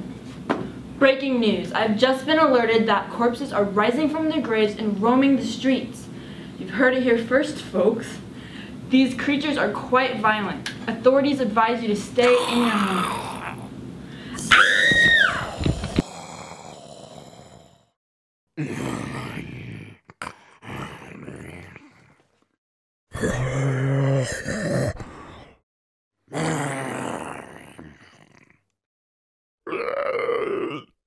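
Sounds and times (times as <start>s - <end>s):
person voicing zombie groan: 12.2s - 13.7s, 15.4s - 17.9s, 18.6s - 22.3s, 23.1s - 25.6s, 26.3s - 28.6s, 29.6s - 31.0s
woman screaming: 14.4s - 15.9s
knocks and thumps from chair: 14.9s - 16.0s.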